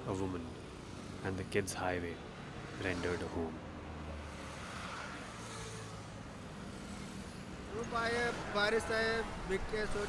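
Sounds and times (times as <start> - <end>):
tyre and road noise: 0.0 - 10.0
vehicle engine humming: 0.0 - 10.0.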